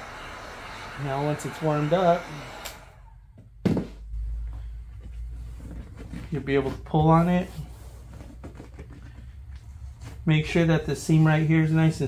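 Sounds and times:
low steady rumble: 0:03.1 - 0:11.0.

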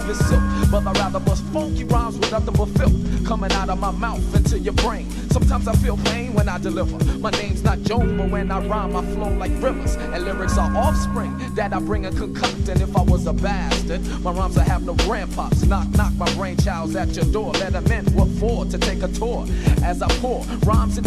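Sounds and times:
rapping over a drum beat: 0:00.0 - 0:21.0.

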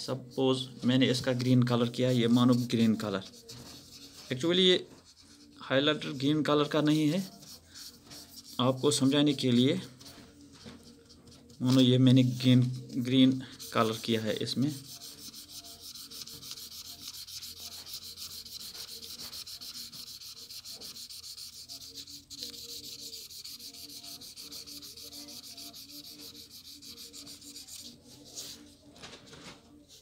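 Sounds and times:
highlighter scribbling on paper: 0:01.0 - 0:28.8.

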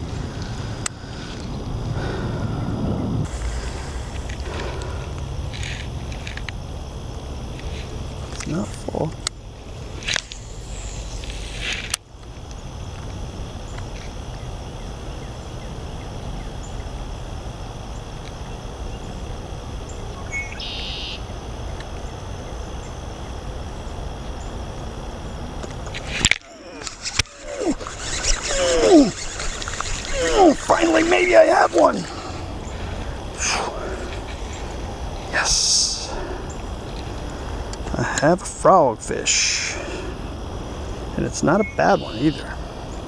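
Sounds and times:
steady low outdoor noise: 0:00.0 - 0:43.0.

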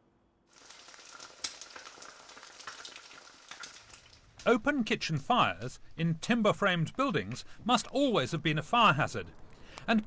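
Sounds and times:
meat patty sizzling in a frying pan: 0:00.5 - 0:04.4.

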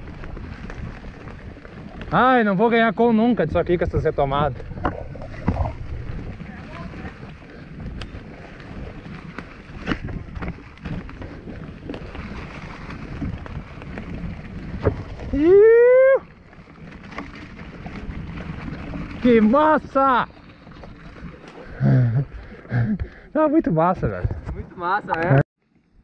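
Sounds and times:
mountain bike rumbling on dirt trail: 0:00.0 - 0:26.0
wind on microphone: 0:03.6 - 0:16.3
rider whooping: 0:15.2 - 0:16.4.

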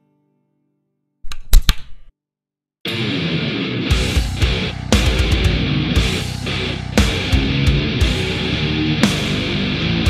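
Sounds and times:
distorted electric guitar playing: 0:02.9 - 0:10.0.

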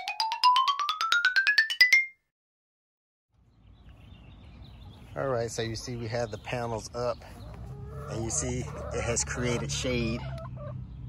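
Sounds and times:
rising run of mallet notes: 0:00.0 - 0:02.2
faint outdoor background noise: 0:03.3 - 0:11.0.

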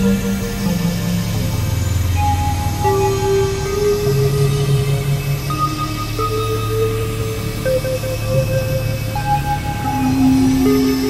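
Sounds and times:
low synthesizer drone: 0:00.0 - 0:11.0.

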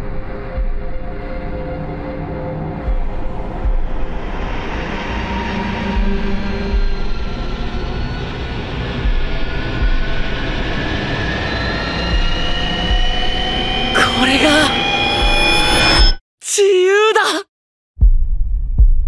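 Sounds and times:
sustained trailer music: 0:00.0 - 0:16.2.

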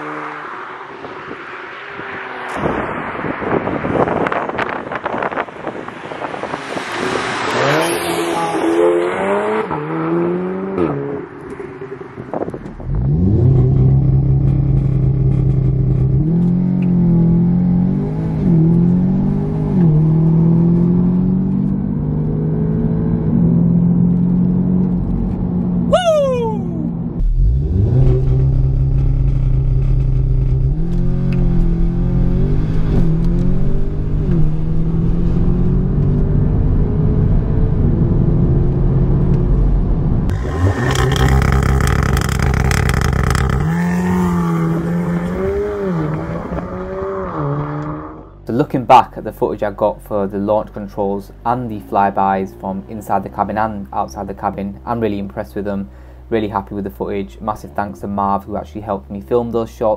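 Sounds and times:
car engine accelerating hard: 0:00.0 - 0:25.9, 0:26.7 - 0:48.4.

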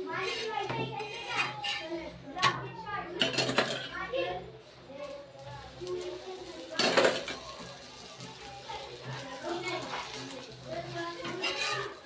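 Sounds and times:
metal spatula scraping a griddle: 0:00.0 - 0:04.2, 0:05.6 - 0:12.0
voices including children: 0:00.0 - 0:12.0.

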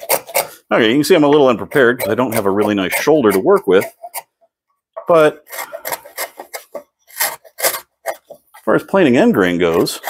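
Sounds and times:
plane rasping across wood: 0:00.0 - 0:00.6, 0:01.2 - 0:04.3, 0:05.4 - 0:10.0.

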